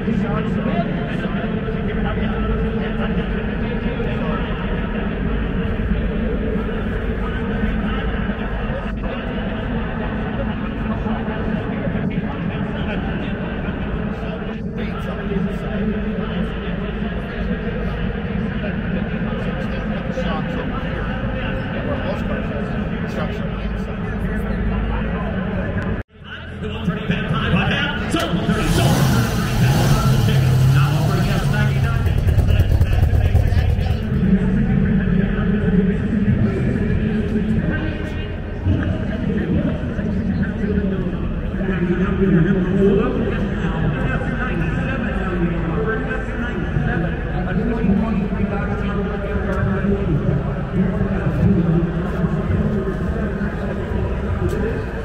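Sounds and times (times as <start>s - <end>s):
crowd babble in large hall: 0.0s - 55.0s
car engine running: 26.7s - 37.2s.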